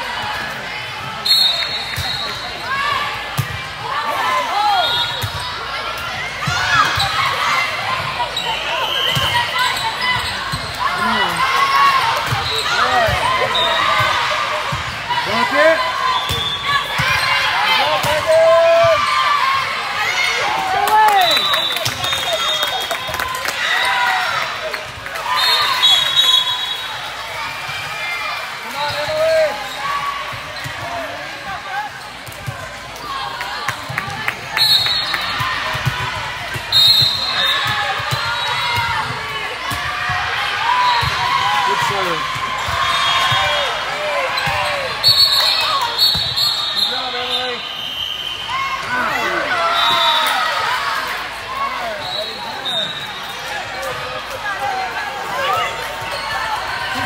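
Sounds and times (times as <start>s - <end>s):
voices talking and calling out: 0.0s - 57.0s.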